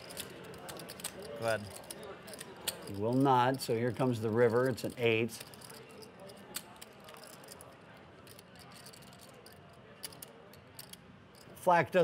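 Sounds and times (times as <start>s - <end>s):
poker chips clicking: 0.0s - 11.5s
low murmur of room noise: 0.0s - 12.0s.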